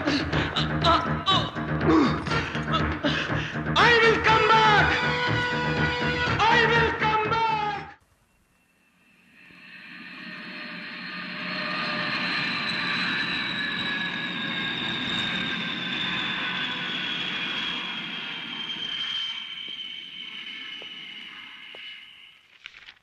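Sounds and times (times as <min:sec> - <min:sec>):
high engine whine dropping in pitch: 0:08.1 - 0:23.0
jet aircraft flying over: 0:08.8 - 0:22.4.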